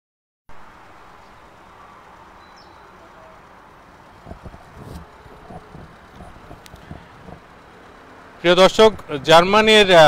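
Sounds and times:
road vehicle rush: 0:00.5 - 0:10.0
low knocks: 0:04.2 - 0:07.4.

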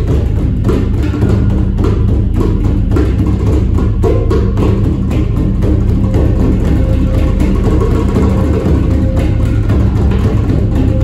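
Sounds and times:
barrel drum struck by hand: 0:00.0 - 0:11.0
djembe drumming: 0:00.0 - 0:11.0
handpan notes ringing: 0:00.0 - 0:11.0.

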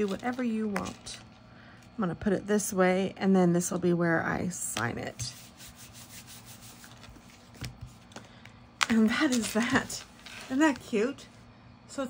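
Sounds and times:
hand rubbing paper card: 0:05.1 - 0:08.2.

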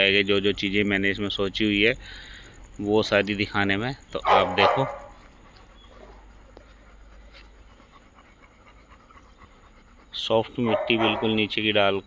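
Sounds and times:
dog panting quickly: 0:04.4 - 0:11.5.

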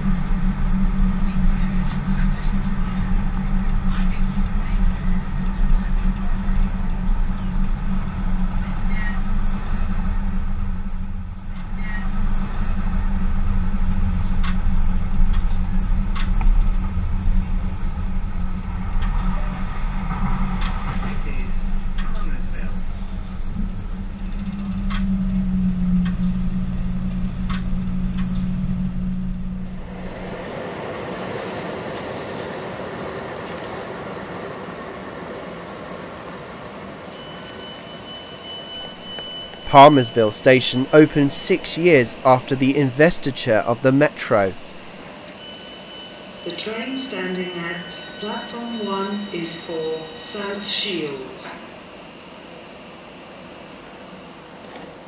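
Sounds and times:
train running low hum: 0:00.0 - 0:55.0.

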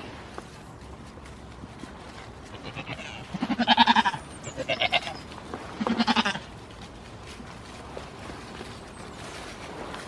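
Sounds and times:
goat bleating: 0:02.5 - 0:05.2, 0:05.8 - 0:06.5.

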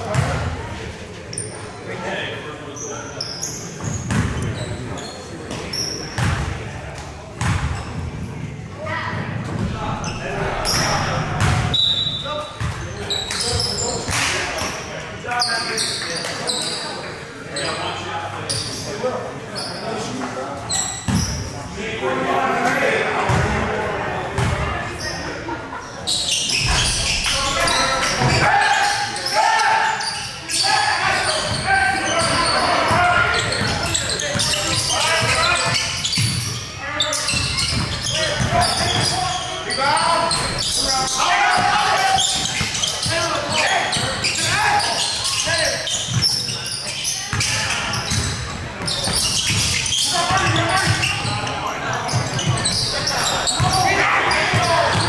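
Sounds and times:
indistinct voices echoing: 0:08.8 - 0:15.4, 0:21.6 - 0:55.0.

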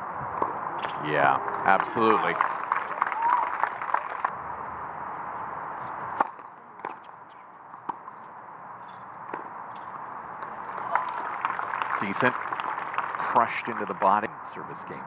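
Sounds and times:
crowd noise: 0:00.0 - 0:08.5, 0:09.4 - 0:15.0
tennis ball struck by rackets: 0:09.3 - 0:10.6.

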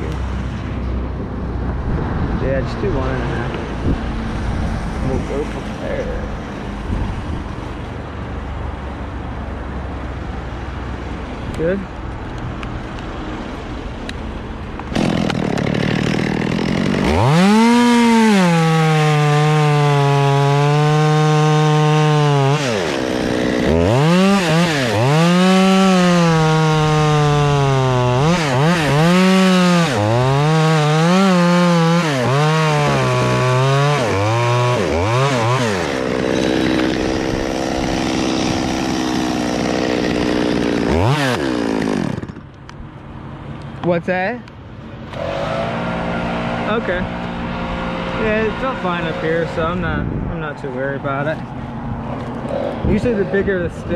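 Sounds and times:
chainsaw revving and cutting wood: 0:14.8 - 0:42.7, 0:45.1 - 0:49.8, 0:52.2 - 0:53.9.

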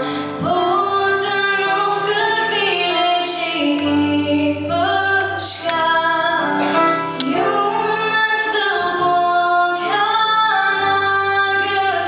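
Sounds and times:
girl singing slow song: 0:00.0 - 0:12.0.

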